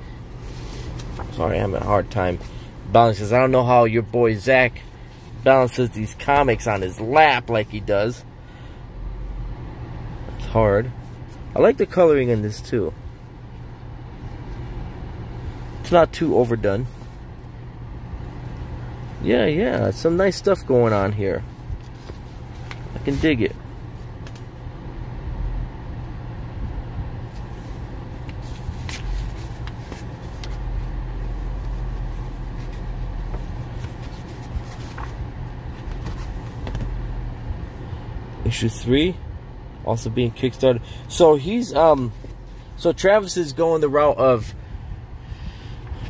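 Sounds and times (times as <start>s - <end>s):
car cabin hum: 0.0s - 46.0s
faint constant tone: 0.0s - 46.0s
comic book pages turning: 28.2s - 30.6s, 31.4s - 37.0s
crisp paper flips: 28.2s - 30.6s, 31.5s - 37.0s.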